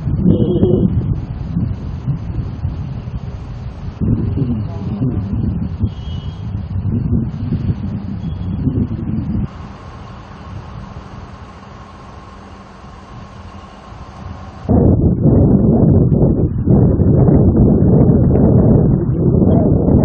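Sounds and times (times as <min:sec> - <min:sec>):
wind buffeting microphone: 0:00.0 - 0:20.0
steady hiss: 0:09.4 - 0:14.7.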